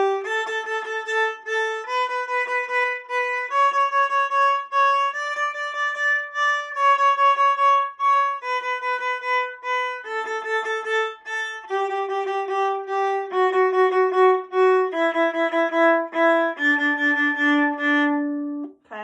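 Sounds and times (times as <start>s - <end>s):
viola playing a descending scale: 0.0s - 19.0s.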